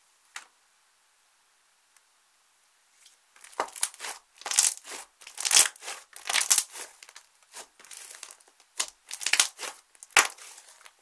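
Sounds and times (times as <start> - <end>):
slime crackling as squeezed: 3.4 - 11.0
sharp slime pop: 8.8 - 10.4.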